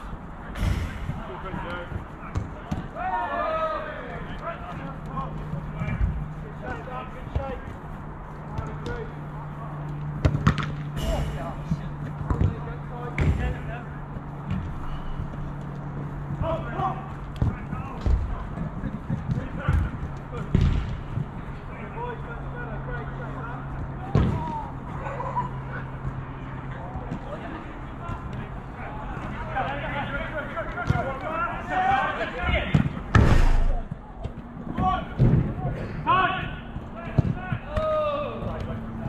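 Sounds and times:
steady low hum: 0.0 - 3.0, 4.1 - 29.7, 32.6 - 39.0
distant shouts of players: 0.6 - 6.0, 26.7 - 38.8.

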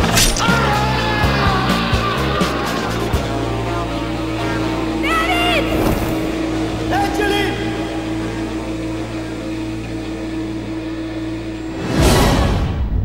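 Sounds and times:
low steady drone: 0.0 - 13.0.

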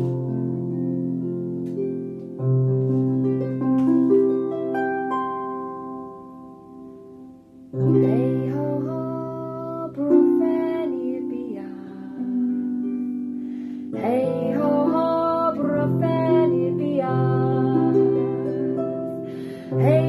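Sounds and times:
woman singing slowly: 7.8 - 12.9, 13.9 - 18.8, 19.6 - 20.0.

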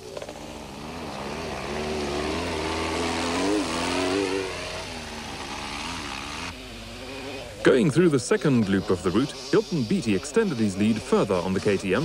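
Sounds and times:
race car engine revving: 0.1 - 7.6.

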